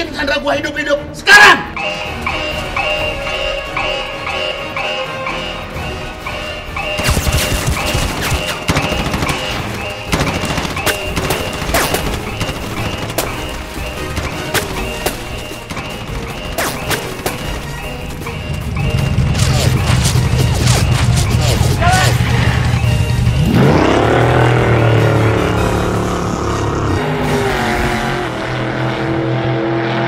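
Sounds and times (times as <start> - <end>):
action film score: 0.0 - 30.0.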